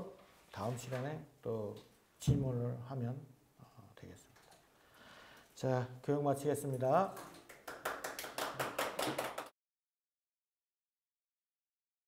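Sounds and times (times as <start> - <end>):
audience clapping: 7.2 - 9.5.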